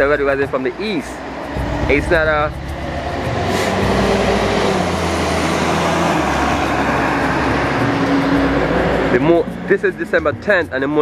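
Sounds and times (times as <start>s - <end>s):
low engine hum: 1.2s - 9.7s
vehicle rushing noise: 1.2s - 9.7s.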